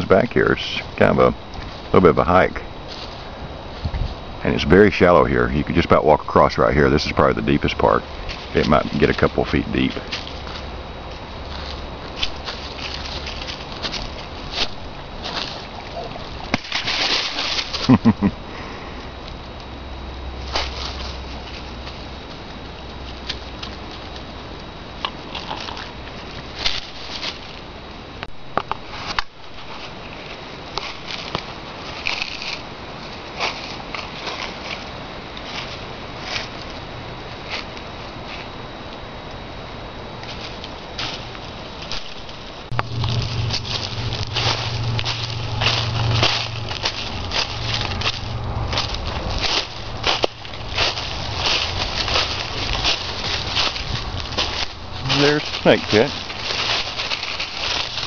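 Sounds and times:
footsteps crunching dry leaves: 0.0s - 19.2s, 20.0s - 27.8s, 28.8s - 38.6s, 40.2s - 58.0s.

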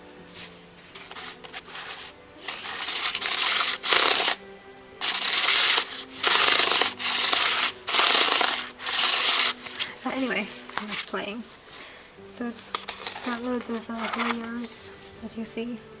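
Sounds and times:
fingers rustling over pencils: 0.4s - 4.4s, 5.0s - 15.2s.

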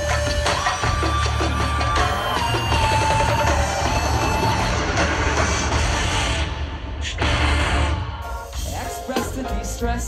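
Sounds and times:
live reggae band with heavy bass: 0.0s - 10.0s.

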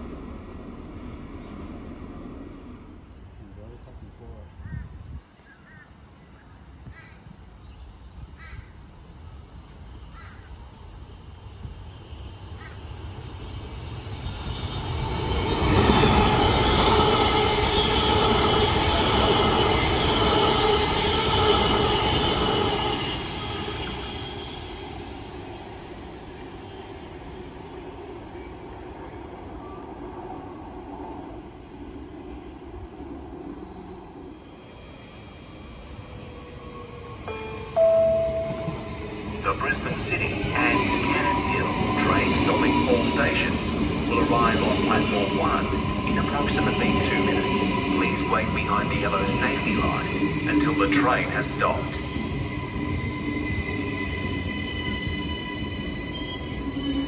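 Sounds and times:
electric train whine: 0.0s - 3.4s, 8.8s - 57.0s
train wheels rumbling and squealing: 8.2s - 30.2s, 32.2s - 57.0s.

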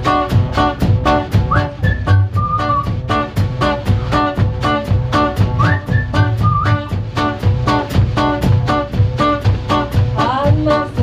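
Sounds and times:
acoustic guitar strumming: 0.0s - 11.0s
double bass: 0.0s - 11.0s
whistled melody: 1.4s - 3.0s, 5.5s - 7.0s.

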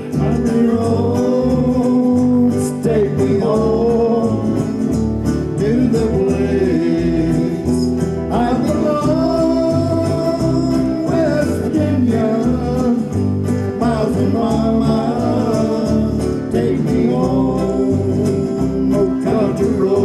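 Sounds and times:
electric bass line: 0.0s - 20.0s
electric guitars: 0.0s - 20.0s.

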